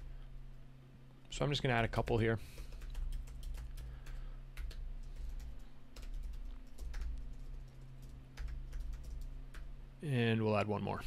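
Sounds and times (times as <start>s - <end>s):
steady low hum: 0.0s - 11.0s
keyboard typing: 2.5s - 9.7s.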